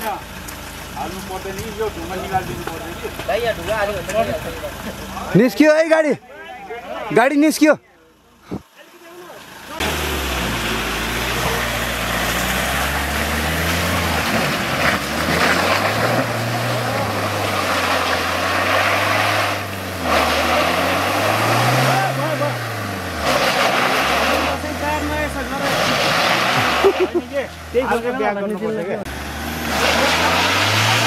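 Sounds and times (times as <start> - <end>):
engine revving hard: 9.7 - 27.3, 29.1 - 31.0
tyres churning mud: 9.7 - 28.5, 29.1 - 31.0.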